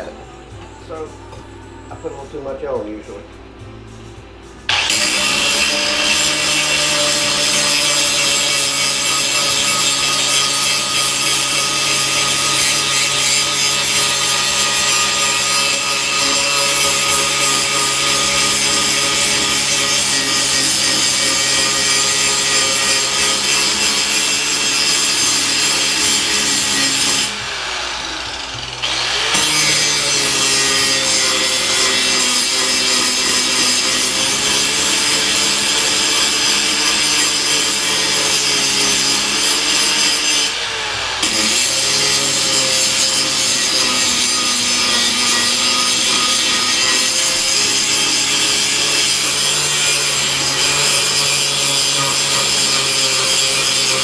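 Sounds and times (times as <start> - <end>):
angle grinder grinding metal: 4.7 - 54.0.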